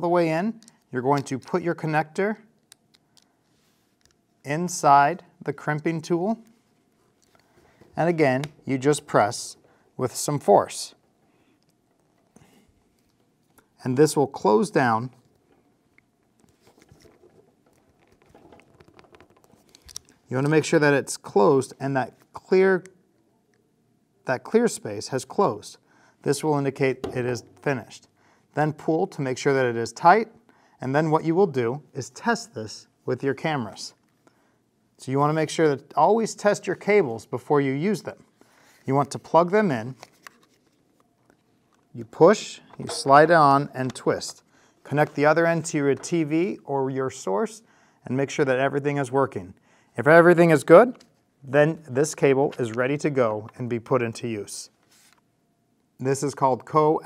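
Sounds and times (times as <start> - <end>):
handling noises: 14.7 - 20.4.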